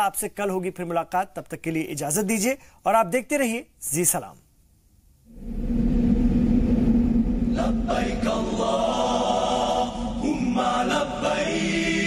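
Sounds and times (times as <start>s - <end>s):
deep steady drone: 5.3s - 11.2s.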